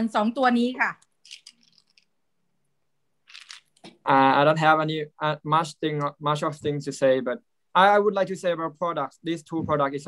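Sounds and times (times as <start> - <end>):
plastic sachet crinkling: 1.2 - 2.1, 3.3 - 3.9.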